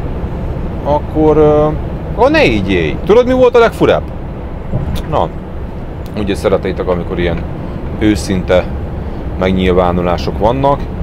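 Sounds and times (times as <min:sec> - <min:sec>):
truck cab engine drone: 0:00.0 - 0:11.0.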